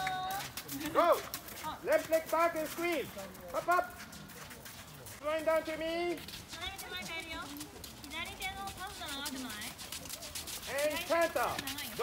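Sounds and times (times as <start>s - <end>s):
horse hoofbeats on sand: 0.0s - 12.0s.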